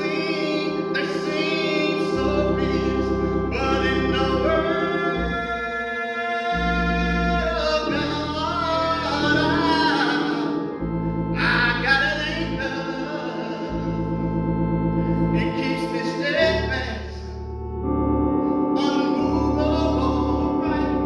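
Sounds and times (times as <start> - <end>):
men's choir singing gospel: 0.0 - 17.3, 18.8 - 21.0
church organ chords: 0.0 - 21.0.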